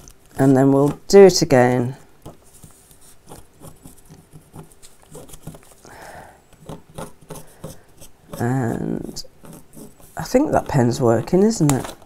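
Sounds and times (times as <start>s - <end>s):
pen scratching on fabric: 2.4s - 5.7s, 6.6s - 11.5s.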